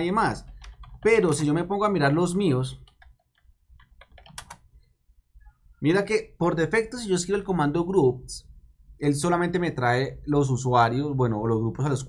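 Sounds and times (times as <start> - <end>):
keyboard typing: 0.0 - 4.7.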